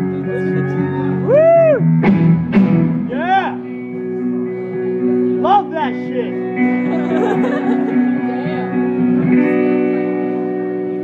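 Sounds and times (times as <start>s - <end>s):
live rock on electric guitars: 0.0s - 11.0s.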